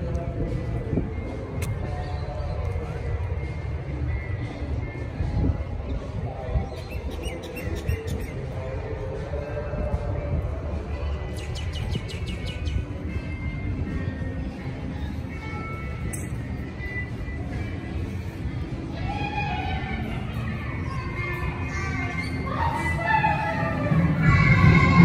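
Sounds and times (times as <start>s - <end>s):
background music: 0.0s - 25.0s
low city rumble: 0.0s - 25.0s.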